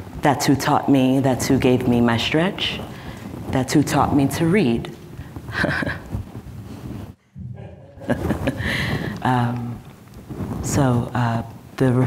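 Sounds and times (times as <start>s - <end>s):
laughter: 5.5s - 6.1s, 7.6s - 9.1s.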